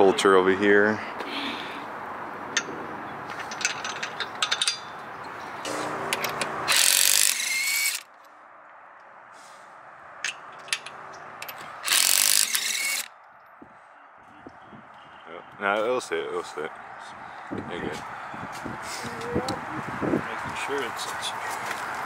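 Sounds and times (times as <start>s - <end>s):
metallic clicks of lug nuts: 3.3s - 5.4s, 10.2s - 13.3s.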